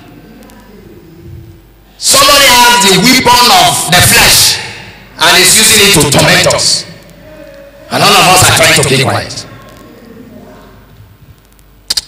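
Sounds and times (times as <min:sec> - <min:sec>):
low steady room hum: 0:00.0 - 0:12.0
sharp clicks: 0:11.4 - 0:12.0.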